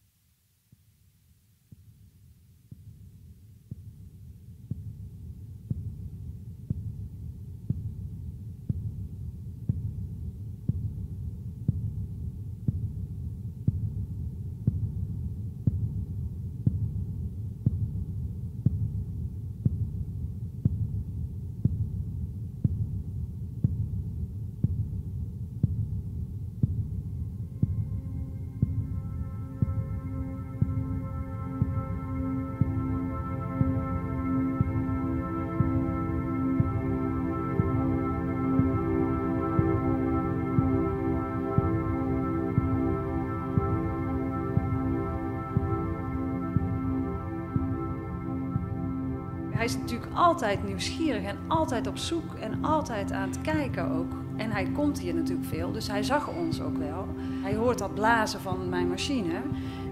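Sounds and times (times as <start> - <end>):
deep heartbeat-like pulse: 2.7 - 59.9
steady low drone: 26.8 - 59.9.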